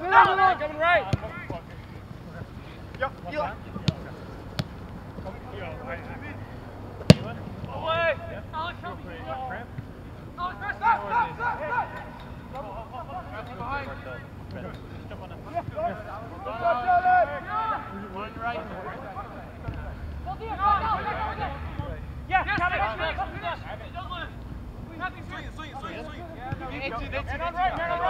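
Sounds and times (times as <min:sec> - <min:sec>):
distant players shouting: 0:00.0 - 0:14.4, 0:15.4 - 0:28.0
soccer ball kick thuds: 0:01.0 - 0:01.8, 0:03.8 - 0:04.8, 0:07.0 - 0:07.8, 0:26.5 - 0:26.8.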